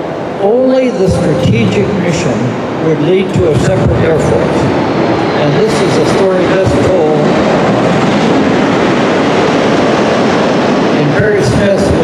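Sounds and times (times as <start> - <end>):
loud steady rushing noise: 0.0 - 12.0.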